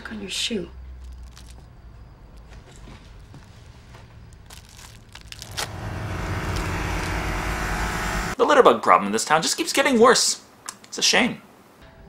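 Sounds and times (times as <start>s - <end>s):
low steady humming drone: 5.1s - 8.4s.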